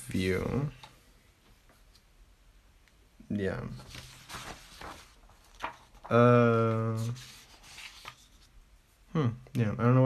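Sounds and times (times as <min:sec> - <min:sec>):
hand rubbing over paper: 0:03.8 - 0:06.1, 0:06.7 - 0:08.5.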